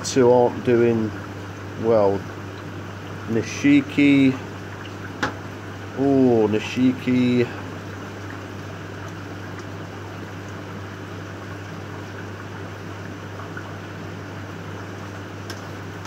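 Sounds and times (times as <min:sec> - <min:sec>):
low electrical hum: 0:00.0 - 0:16.0
pump water hiss: 0:00.2 - 0:16.0.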